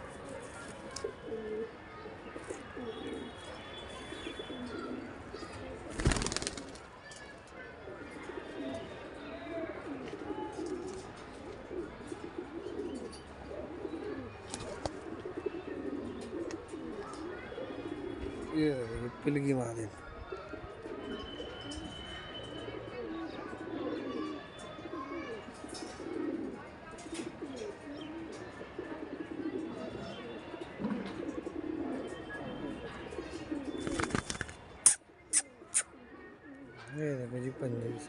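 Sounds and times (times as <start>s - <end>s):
pigeons cooing: 1.0s - 3.4s, 4.2s - 6.7s, 7.9s - 18.6s, 20.3s - 21.8s, 22.7s - 34.3s, 34.9s - 36.8s.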